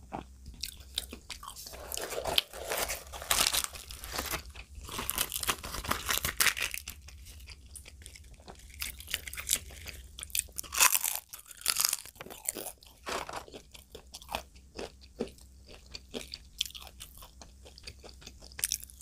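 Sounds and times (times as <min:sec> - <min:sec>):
close chewing with crunchy bites: 0:00.0 - 0:19.0.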